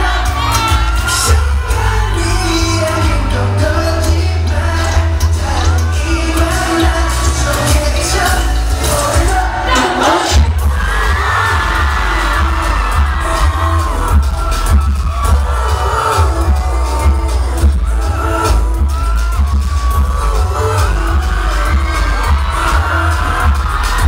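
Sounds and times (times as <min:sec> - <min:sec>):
live pop song with distorted bass: 0:00.0 - 0:24.0
person singing: 0:00.0 - 0:24.0.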